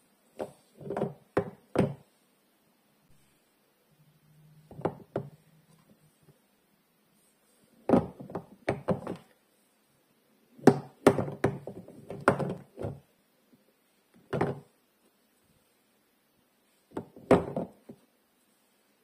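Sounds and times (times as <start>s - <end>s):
soap bars knocking together: 10.6s - 13.0s.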